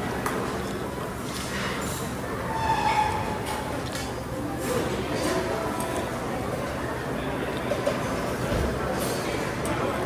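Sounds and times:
dining hall room noise: 0.0s - 10.0s.

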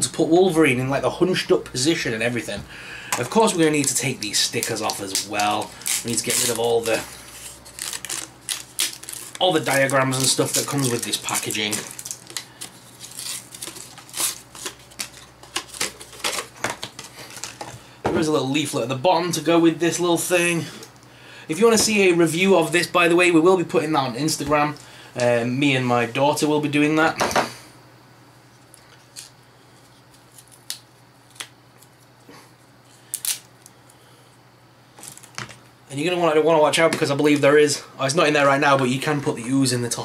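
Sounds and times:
stickers being peeled off: 3.5s - 17.6s.

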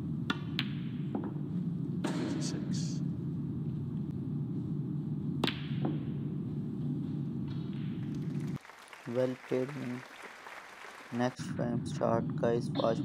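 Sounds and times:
low arena hum: 0.0s - 13.0s.

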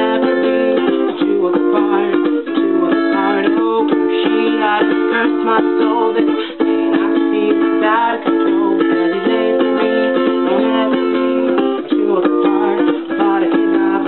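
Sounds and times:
ukulele strumming: 0.0s - 14.0s.

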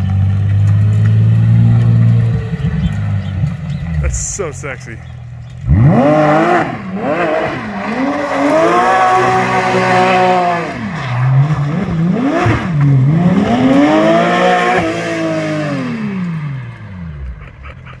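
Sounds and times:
race car engine revving hard: 5.6s - 17.3s.

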